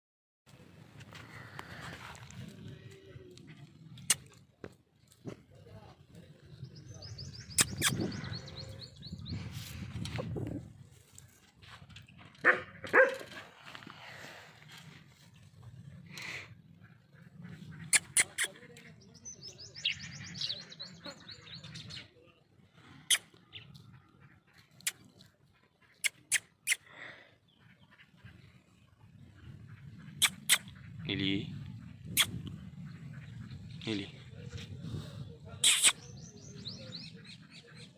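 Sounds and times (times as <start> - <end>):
mouth clicks: 3.9 - 4.4, 7.4 - 8.6, 17.8 - 18.9, 22.9 - 23.4, 24.7 - 27.0, 30.1 - 30.9, 32.0 - 32.7, 35.6 - 36.3
small bird chirping: 6.6 - 9.5, 17.7 - 22.2, 29.3 - 33.8, 35.6 - 37.9
sharp clicks: 7.5 - 8.0, 35.6 - 36.0.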